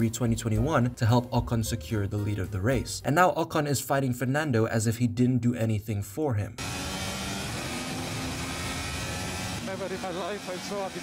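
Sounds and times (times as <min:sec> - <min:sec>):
race car engine at speed: 0:06.6 - 0:11.0.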